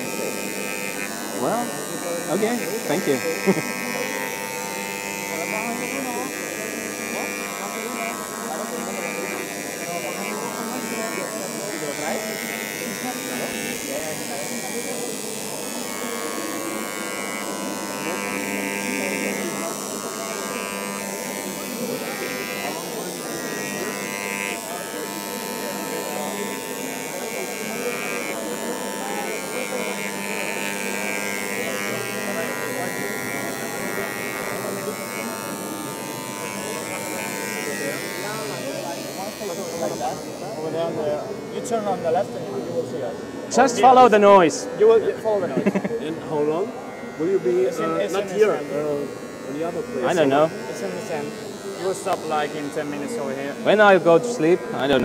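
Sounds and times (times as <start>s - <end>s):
crowd chatter: 0.0s - 55.0s
electric engraving pen buzzing: 0.0s - 55.0s.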